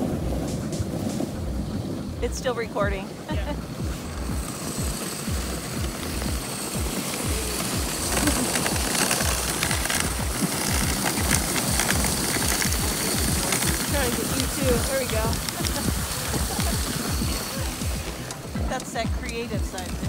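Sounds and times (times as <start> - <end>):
sled rattling: 0.0 - 20.0
sled runners scraping on snow: 0.0 - 20.0.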